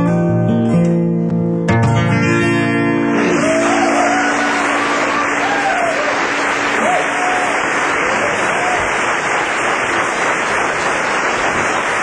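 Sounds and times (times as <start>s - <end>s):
audience applauding: 3.1s - 12.0s
audience shouts: 3.2s - 9.4s.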